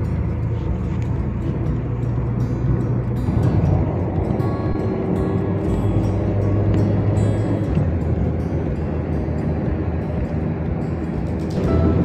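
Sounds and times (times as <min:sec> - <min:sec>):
car driving at highway speed: 0:00.0 - 0:12.0.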